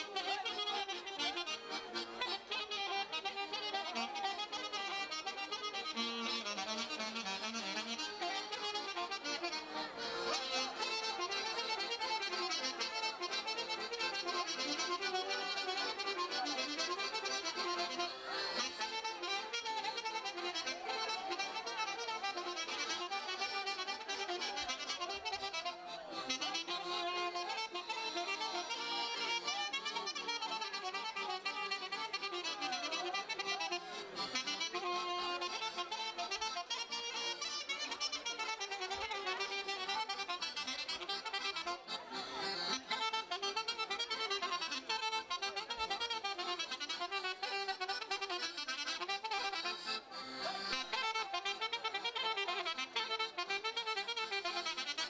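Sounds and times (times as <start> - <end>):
folk dance music with accordion: 0.0 - 55.0.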